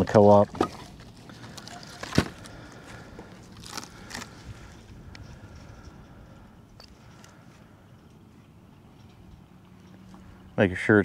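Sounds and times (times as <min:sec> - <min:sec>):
gloved hands rustling: 0:00.8 - 0:06.0.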